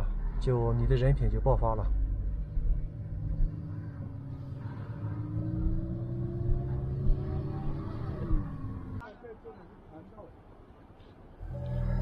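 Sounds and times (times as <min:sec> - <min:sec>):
car engine: 0:00.0 - 0:09.0
road rumble: 0:00.0 - 0:12.0.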